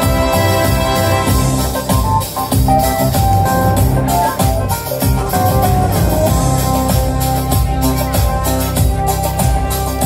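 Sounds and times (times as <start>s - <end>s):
bass: 0.0s - 10.0s
drum kit: 0.0s - 10.0s
electronic keyboard: 0.0s - 10.0s
guitar: 0.0s - 10.0s.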